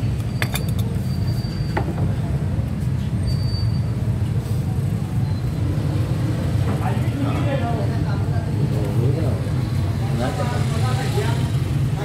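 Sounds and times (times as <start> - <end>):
busy street rumble: 0.0 - 12.0.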